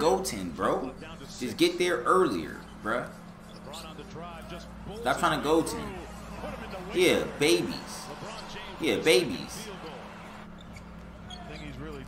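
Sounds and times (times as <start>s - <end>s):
tv commentator talking: 0.0s - 10.3s
basketball game sounds: 0.0s - 12.0s.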